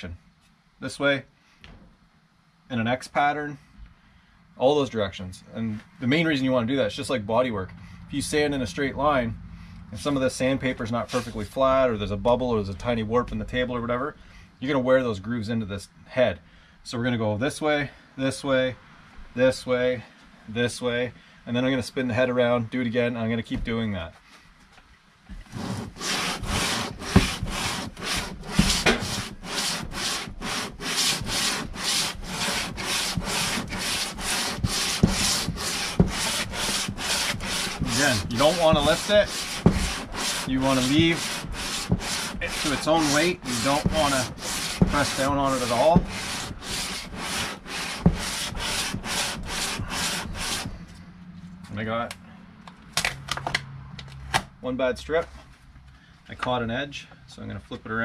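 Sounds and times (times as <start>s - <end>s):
low steady hum: 0.0s - 24.2s
metal scraping on sandpaper: 10.8s - 11.6s, 25.5s - 50.9s.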